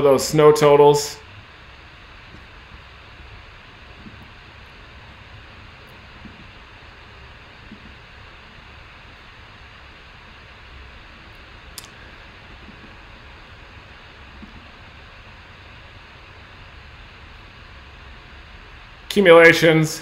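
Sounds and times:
faint room tone hiss: 0.0 - 20.0.

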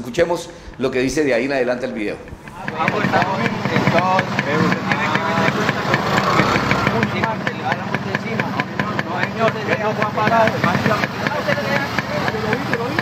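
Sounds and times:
engine idling: 0.4 - 13.0
people talking over one another: 0.7 - 13.0.

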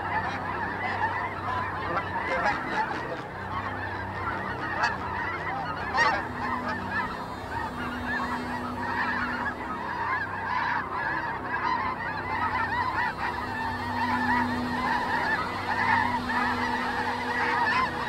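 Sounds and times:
flock of birds calling: 0.0 - 18.0
low steady hum: 0.0 - 18.0.

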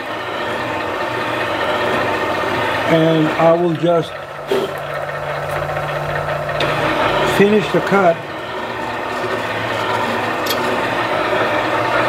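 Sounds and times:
cutting machine humming: 0.0 - 12.0.

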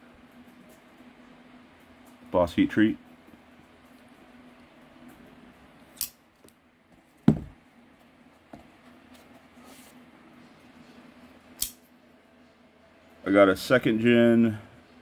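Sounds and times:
metallic knife click: 6.0 - 6.2, 11.6 - 11.8
knock: 7.3 - 7.6.

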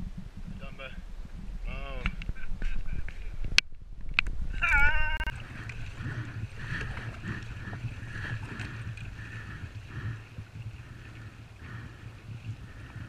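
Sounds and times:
wind: 0.0 - 13.0
water swishing from paddling: 4.4 - 13.0
short pitched cries: 4.6 - 5.3.

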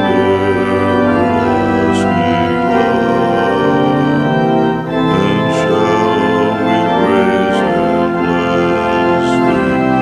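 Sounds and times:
church organ playing a hymn: 0.0 - 10.0.

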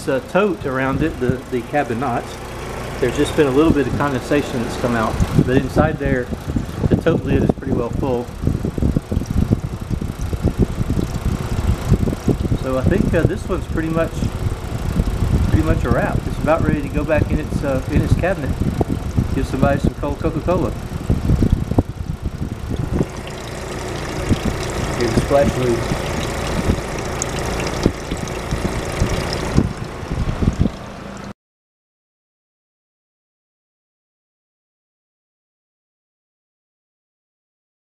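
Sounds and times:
compressor and fan rumbling: 0.0 - 31.4.

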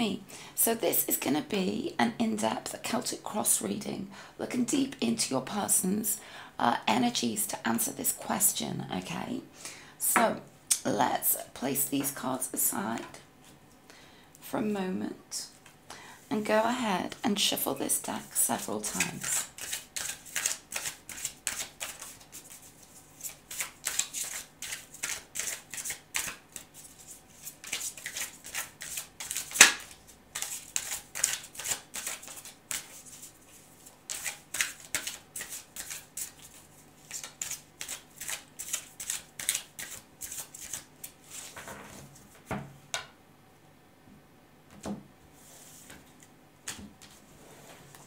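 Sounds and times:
cards being shuffled: 18.9 - 42.6.

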